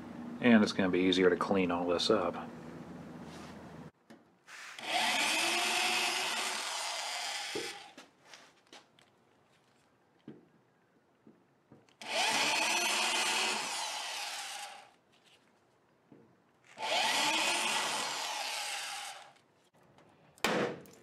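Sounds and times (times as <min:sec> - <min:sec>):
electric drill boring into steel: 0:04.8 - 0:08.0, 0:12.0 - 0:15.0, 0:16.7 - 0:19.4.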